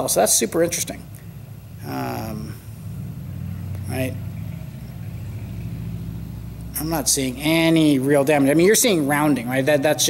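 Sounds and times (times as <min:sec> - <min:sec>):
man talking: 0:00.0 - 0:01.1, 0:01.8 - 0:02.6, 0:03.9 - 0:04.2, 0:06.8 - 0:10.0
low mechanical hum: 0:00.0 - 0:10.0.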